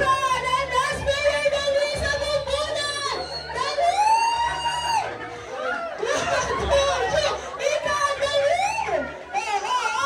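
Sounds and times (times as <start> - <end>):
party crowd chatter: 0.0 - 10.0.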